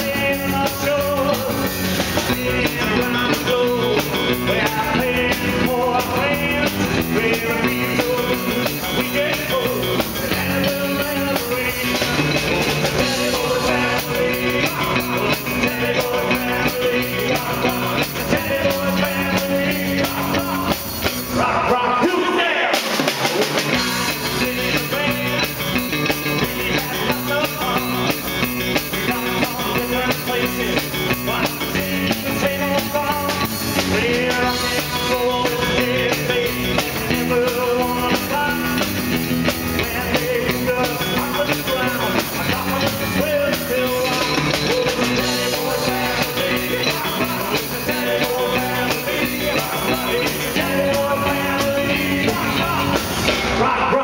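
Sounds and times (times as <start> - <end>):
drum kit: 0.0 - 54.0
electric guitar: 0.0 - 54.0
man singing: 0.0 - 54.0.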